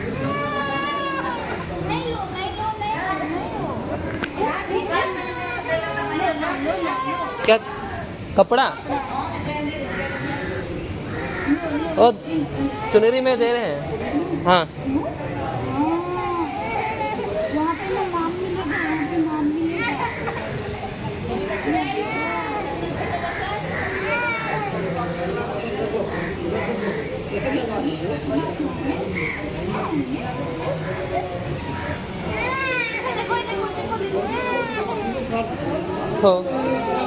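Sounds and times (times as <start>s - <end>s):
children and adults talking: 0.0s - 37.0s.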